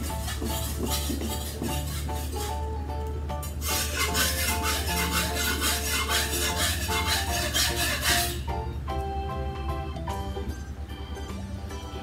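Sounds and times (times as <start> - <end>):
razor scraping stubble: 0.0 - 2.6, 3.4 - 8.4
background music: 0.0 - 12.0.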